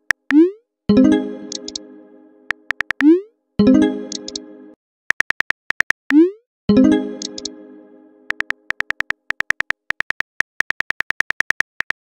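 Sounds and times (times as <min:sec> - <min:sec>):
keyboard typing clicks: 0:01.5 - 0:01.8, 0:02.5 - 0:03.2, 0:04.1 - 0:04.4, 0:05.1 - 0:06.3, 0:07.1 - 0:07.6, 0:08.3 - 0:12.0.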